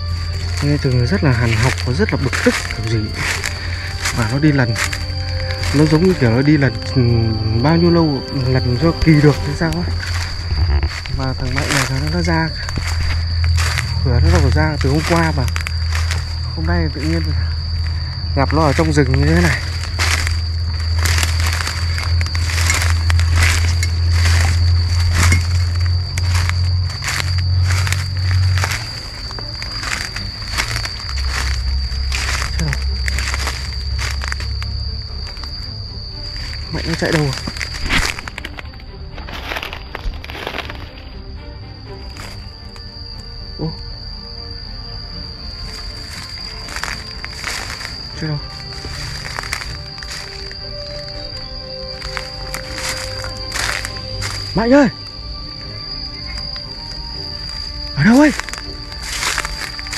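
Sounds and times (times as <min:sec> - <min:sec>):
footsteps crunching dry leaves: 0:00.0 - 0:41.2, 0:45.5 - 0:54.9, 0:55.9 - 0:59.9
twigs crackling underfoot: 0:00.0 - 0:43.8, 0:45.5 - 0:59.9
background music: 0:00.0 - 0:59.9
high thin tone: 0:00.0 - 0:59.9.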